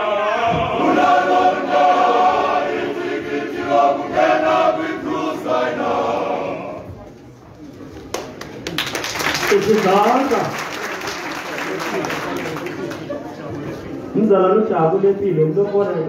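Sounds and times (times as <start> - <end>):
male voice choir singing: 0.0 - 6.8.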